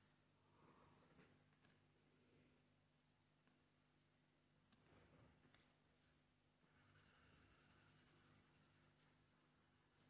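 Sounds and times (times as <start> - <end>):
stylus scratching on screen: 6.7 - 10.0.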